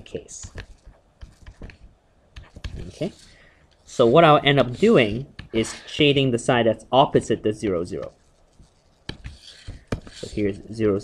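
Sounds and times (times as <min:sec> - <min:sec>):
stylus tapping a tablet screen: 0:00.4 - 0:02.8, 0:09.0 - 0:10.3
stylus scratching: 0:00.4 - 0:06.2, 0:07.4 - 0:11.0.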